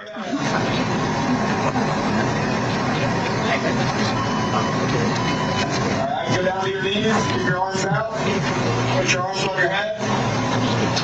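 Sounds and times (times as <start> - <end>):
loud steady rumbling: 0.0 - 11.0.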